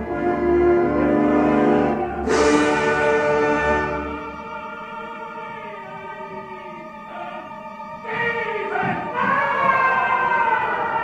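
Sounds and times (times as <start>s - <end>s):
orchestra playing: 0.0s - 5.6s
opera singing voices: 0.0s - 11.0s.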